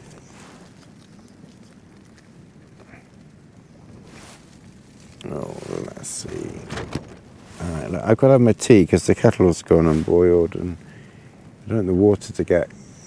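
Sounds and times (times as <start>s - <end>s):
rain pattering on tarp: 0.0s - 12.8s
low voice: 5.2s - 6.9s.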